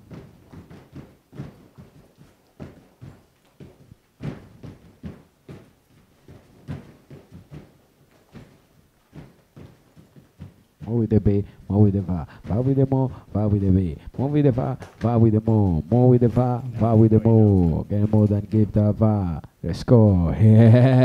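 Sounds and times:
shoes stamping on artificial turf: 0:00.0 - 0:19.2.

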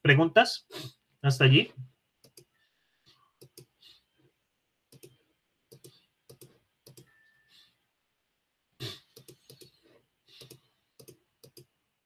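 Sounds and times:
keyboard typing: 0:02.2 - 0:02.6, 0:03.4 - 0:03.7, 0:04.9 - 0:07.3, 0:09.1 - 0:09.8, 0:10.4 - 0:11.7.

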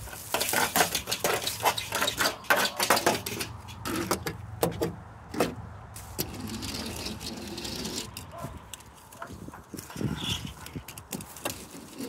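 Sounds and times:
toy car rolling on wood: 0:00.0 - 0:04.8, 0:06.2 - 0:12.0.

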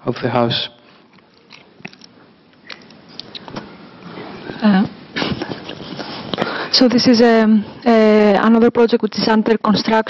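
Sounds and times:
soft rustles: 0:05.2 - 0:06.4.

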